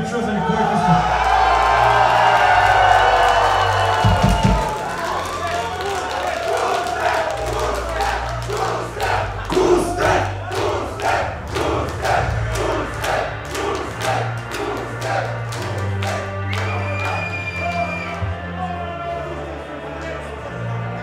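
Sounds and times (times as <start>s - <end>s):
crowd chanting: 0.0s - 17.4s
crowd clapping in rhythm: 1.0s - 18.5s.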